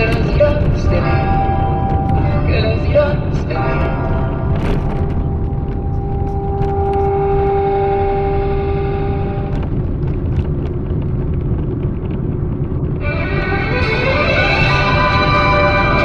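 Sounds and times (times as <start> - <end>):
car rumbling over paving stones: 0.0 - 16.0.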